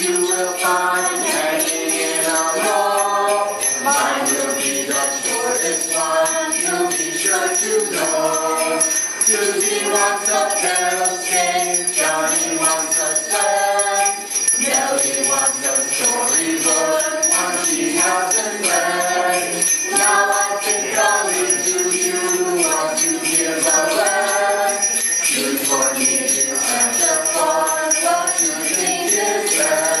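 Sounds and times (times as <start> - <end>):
group singing a carol: 0.0 - 30.0
sleigh bells shaking: 0.0 - 30.0.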